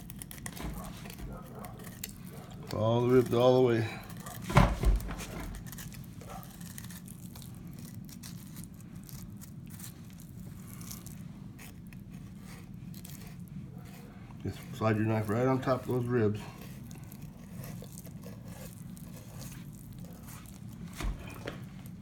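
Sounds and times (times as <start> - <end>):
knife slicing along fish bones: 0.0 - 22.0.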